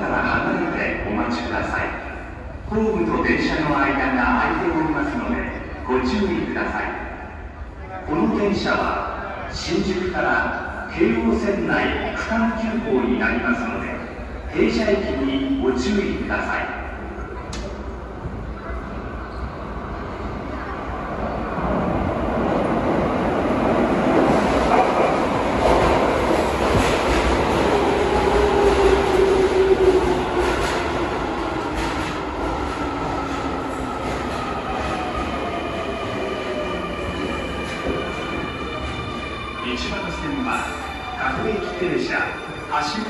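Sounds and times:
train rumble: 16.1 - 41.8.

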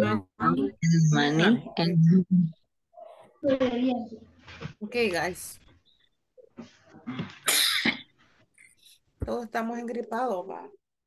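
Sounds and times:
person sneezing: 7.2 - 8.1.

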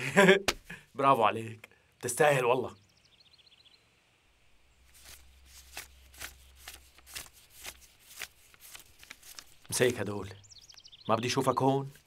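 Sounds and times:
faint bird chirps: 2.5 - 4.0, 9.5 - 12.0.

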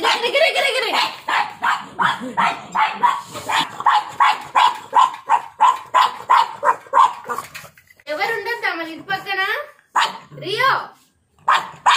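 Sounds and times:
dog barking rapidly: 0.0 - 7.5, 9.9 - 10.3, 11.4 - 11.9.

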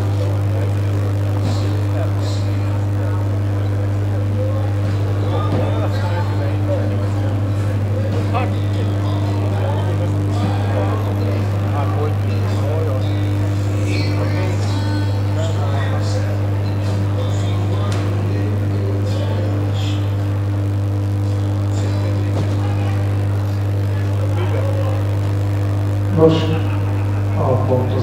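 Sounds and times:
people chattering: 0.0 - 28.0
steady low hum: 0.0 - 28.0.

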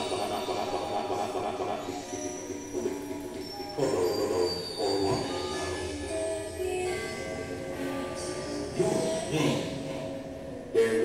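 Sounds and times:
train wheels squealing on rails: 0.0 - 6.7.

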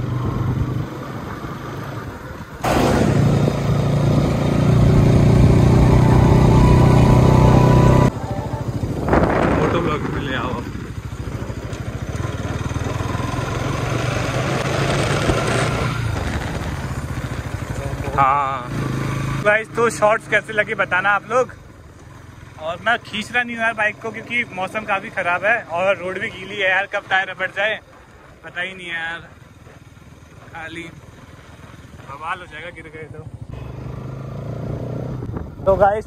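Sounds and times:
motorcycle engine running: 0.0 - 36.0.

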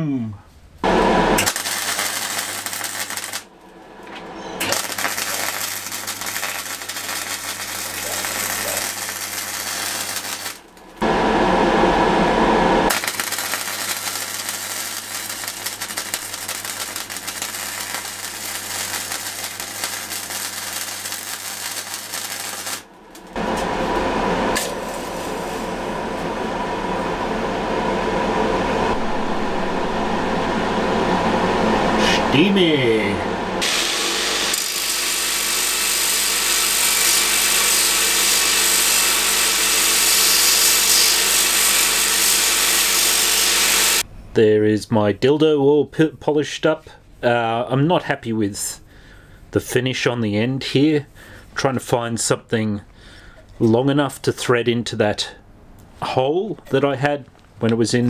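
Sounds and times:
low electrical hum: 0.0 - 41.7, 44.0 - 58.0
welder arc crackling: 0.8 - 26.8, 32.3 - 44.1
steady mid tone noise: 22.2 - 33.6.

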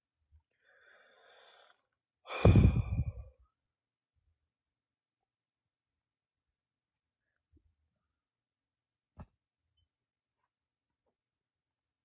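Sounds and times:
man sighing: 2.3 - 3.3.

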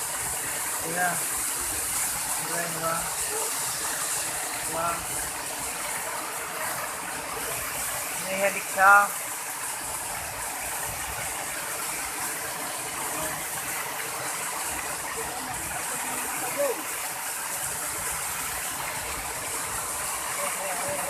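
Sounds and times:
waterfall splashing onto rocks: 0.0 - 21.0.

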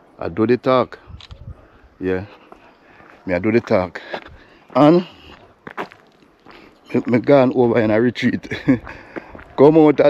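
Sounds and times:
footsteps on gravel: 2.2 - 10.0
person speaking: 3.2 - 5.4, 6.8 - 10.0.

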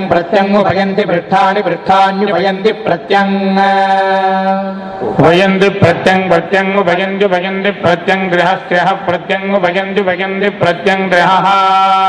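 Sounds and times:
person chanting a long vowel: 0.0 - 5.6.

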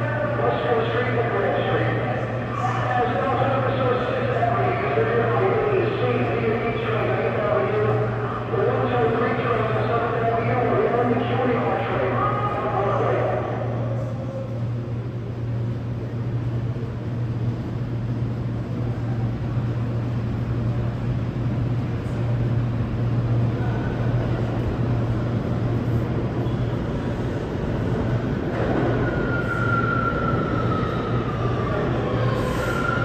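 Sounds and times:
subway train rumble: 0.0 - 33.0.

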